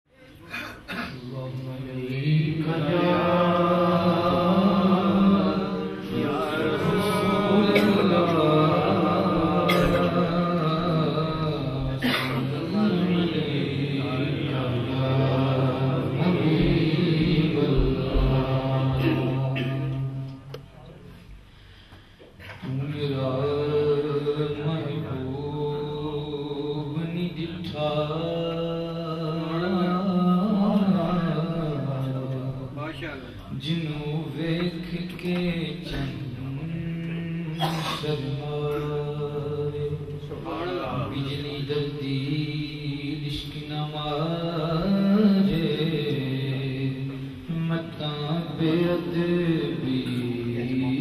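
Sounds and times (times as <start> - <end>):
man chanting into a microphone: 0.1 - 20.7, 22.5 - 51.0.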